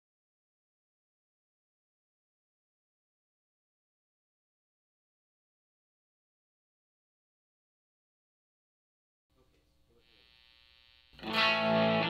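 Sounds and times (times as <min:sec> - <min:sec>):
guitar amplifier hum and buzz: 0:09.4 - 0:12.0.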